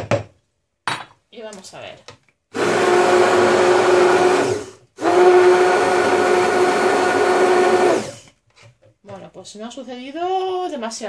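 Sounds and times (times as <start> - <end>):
stick blender mixing liquid: 2.5 - 8.3.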